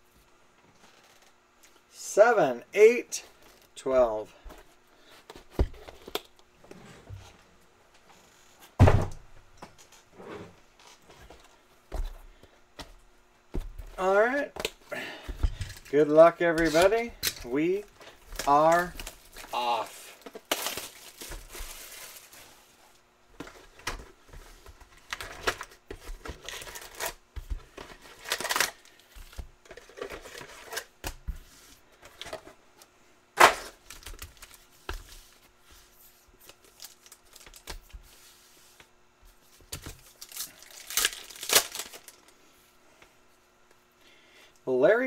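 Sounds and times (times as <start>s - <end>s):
plastic wrap crinkling and tearing: 16.7s - 22.6s, 36.5s - 37.9s, 40.0s - 42.3s.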